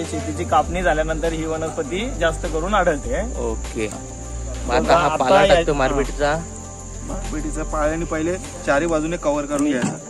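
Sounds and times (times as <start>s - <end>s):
crickets trilling: 0.0s - 10.0s
men talking: 0.0s - 10.0s.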